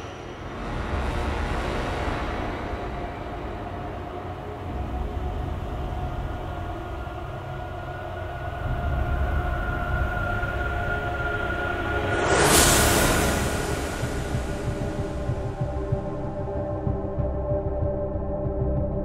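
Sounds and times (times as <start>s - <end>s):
low rumbling drone: 0.0s - 19.0s.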